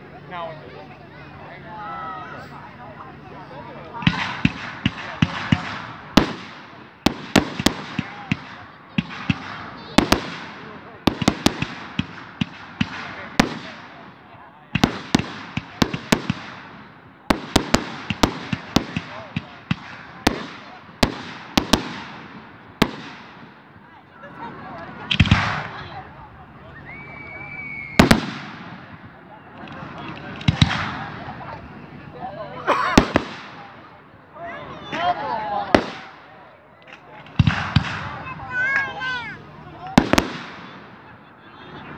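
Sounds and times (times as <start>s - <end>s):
fireworks bangs: 3.9s - 24.0s, 25.0s - 31.9s, 32.8s - 34.2s, 35.5s - 41.2s
fireworks crackle: 4.0s - 24.0s, 24.8s - 32.0s, 32.9s - 33.9s, 35.6s - 41.2s.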